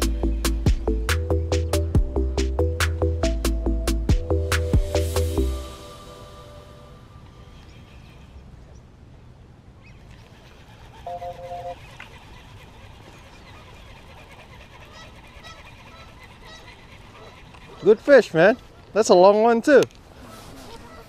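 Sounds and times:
faint bird chirps: 0:11.0 - 0:12.0
two-tone horn honk: 0:11.1 - 0:11.8.

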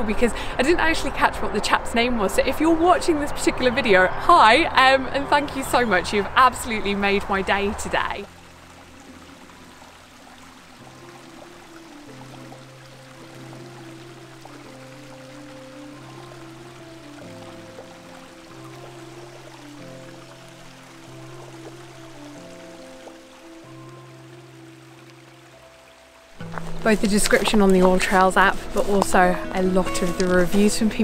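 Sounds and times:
stream rushing over rocks: 0:05.6 - 0:31.0
slow held chords music: 0:08.0 - 0:31.0.

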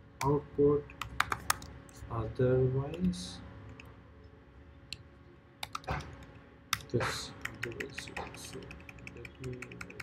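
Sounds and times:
keyboard keystrokes: 0:05.6 - 0:10.0.

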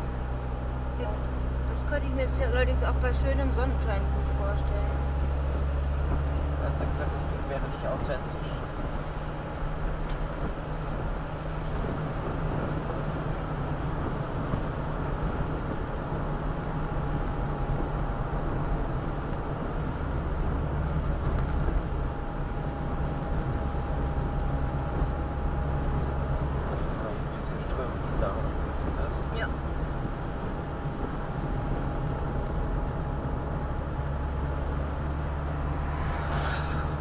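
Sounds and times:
car engine hum: 0:00.0 - 0:37.0
tyre noise on wet road: 0:16.4 - 0:37.0.

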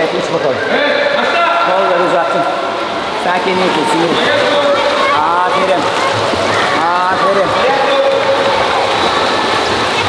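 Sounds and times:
children splashing in pool: 0:00.6 - 0:10.0.

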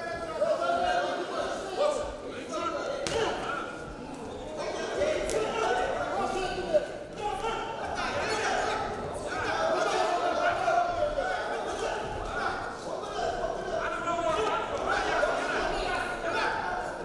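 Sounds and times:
men calling out in echoing hall: 0:00.0 - 0:17.0.

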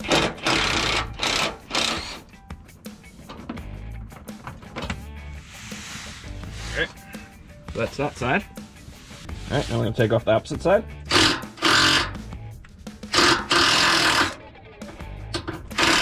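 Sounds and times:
background music: 0:00.0 - 0:16.0
cordless driver spinning screws: 0:11.1 - 0:12.1, 0:13.1 - 0:14.4, 0:15.8 - 0:16.0.

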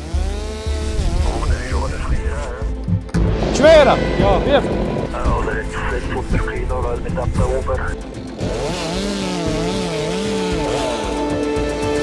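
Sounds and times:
chainsaw cutting wood: 0:00.0 - 0:05.5, 0:07.9 - 0:12.0
background music: 0:00.0 - 0:12.0.

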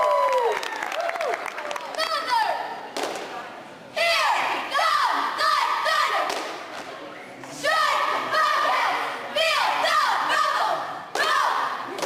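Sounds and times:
cheerleaders shouting in unison: 0:04.0 - 0:06.4, 0:07.6 - 0:12.0.

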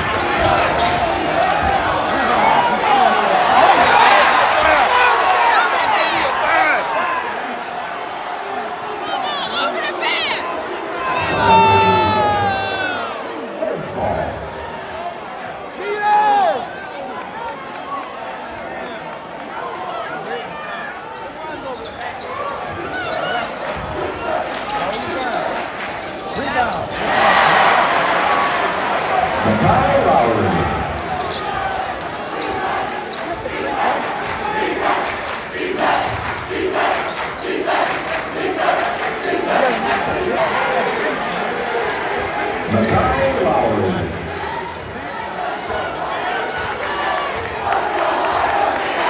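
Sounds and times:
spectators talking and calling out: 0:00.0 - 0:17.2, 0:19.5 - 0:49.0.

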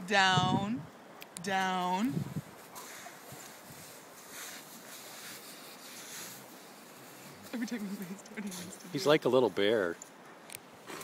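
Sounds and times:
dog rustling in sand: 0:02.1 - 0:09.4.

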